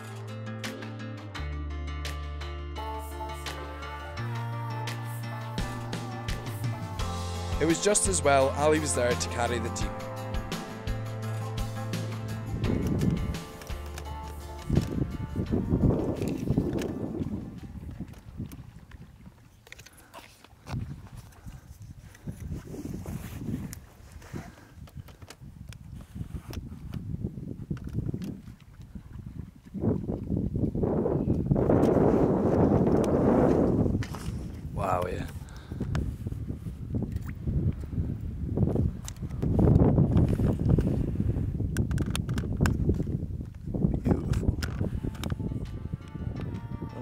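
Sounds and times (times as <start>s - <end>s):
background music: 0.0s - 17.9s, 44.8s - 47.0s
water stirred by hands: 11.4s - 23.0s
wind buffeting microphone: 12.5s - 13.6s, 14.6s - 19.4s, 20.6s - 47.0s.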